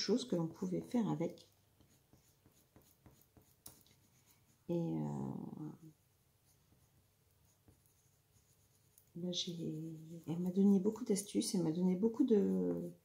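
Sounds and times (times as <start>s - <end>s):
pencil scratching on paper: 0.6s - 13.0s.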